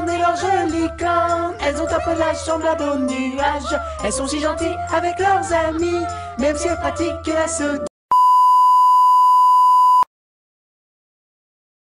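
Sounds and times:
high electronic beep: 8.1s - 10.1s.

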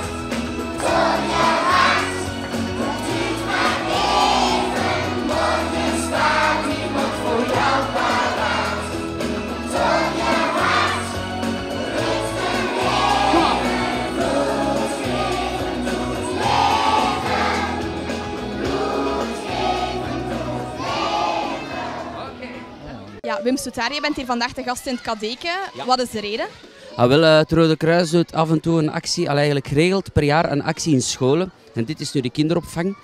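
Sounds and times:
group singing: 0.0s - 22.2s.

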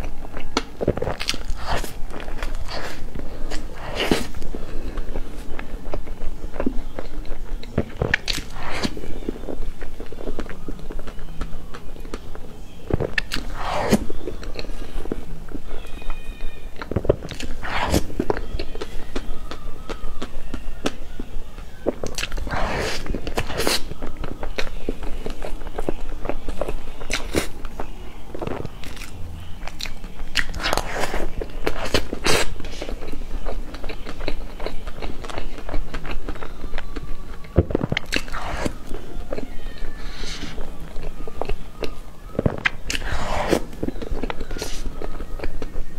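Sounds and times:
wet chewing and lip smacking: 0.0s - 15.6s, 16.8s - 45.9s.

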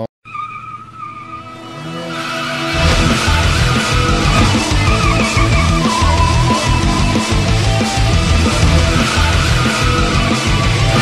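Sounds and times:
tyre squeal screech: 0.3s - 11.0s
music: 1.3s - 11.0s.

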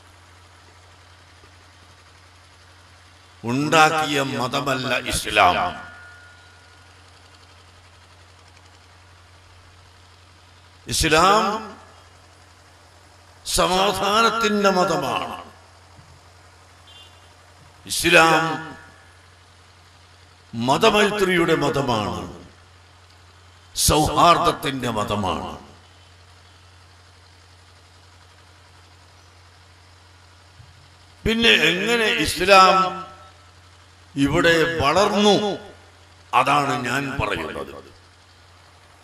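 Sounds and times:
faint low hum: 0.0s - 39.0s
light hiss: 0.0s - 39.0s
man's voice: 3.5s - 5.8s, 10.9s - 11.8s, 13.5s - 15.5s, 17.9s - 18.8s, 31.3s - 33.1s, 34.2s - 35.7s, 36.4s - 37.9s.

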